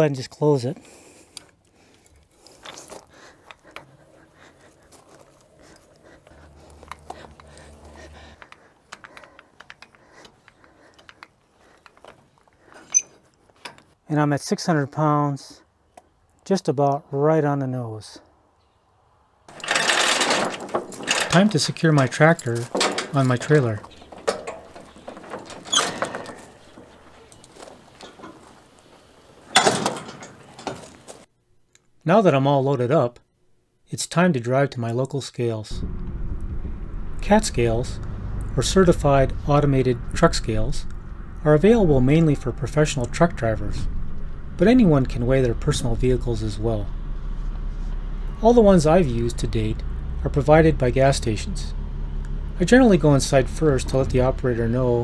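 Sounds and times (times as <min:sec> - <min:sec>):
metal clicks and clinks of hitch: 0:19.5 - 0:26.6
faint low hum: 0:35.7 - 0:55.0.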